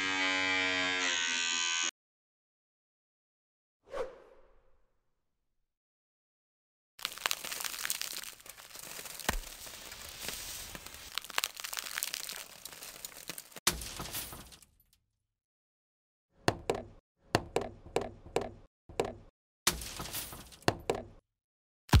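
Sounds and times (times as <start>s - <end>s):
dense crackling and crunching: 7.0s - 14.7s.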